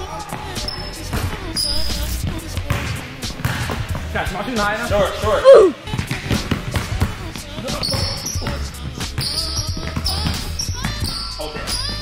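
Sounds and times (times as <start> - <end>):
background music with low bass: 0.0 - 12.0
basketball bouncing on hardwood floor: 2.7 - 4.1, 5.9 - 11.2.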